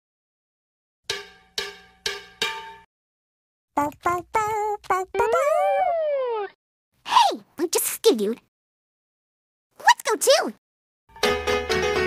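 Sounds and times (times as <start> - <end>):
bell-like metallic percussion notes: 1.1 - 2.9.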